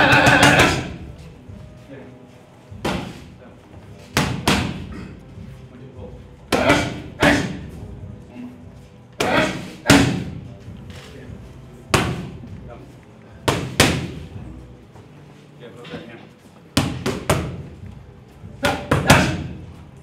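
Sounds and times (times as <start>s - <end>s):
boxing gloves hitting mitts: 0.0s - 1.1s, 2.7s - 3.3s, 4.0s - 5.1s, 9.2s - 10.5s, 11.9s - 12.5s, 13.4s - 14.4s, 16.7s - 17.8s, 18.5s - 19.7s.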